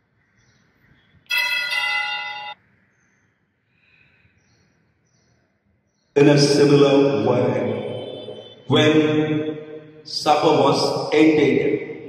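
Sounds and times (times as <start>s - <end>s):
altar bells ringing: 1.3s - 2.6s.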